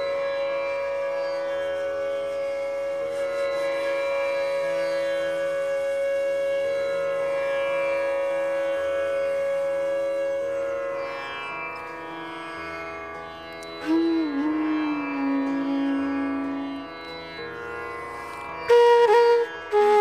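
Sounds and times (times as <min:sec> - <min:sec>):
bamboo flute long note: 0:00.0 - 0:11.2, 0:13.7 - 0:17.5, 0:18.6 - 0:20.0
droning strings: 0:00.0 - 0:20.0.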